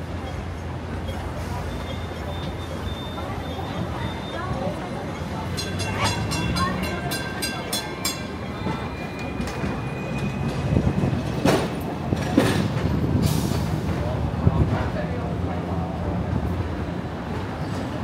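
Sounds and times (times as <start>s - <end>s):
ringing metallic clicks of tram: 5.2s - 12.9s.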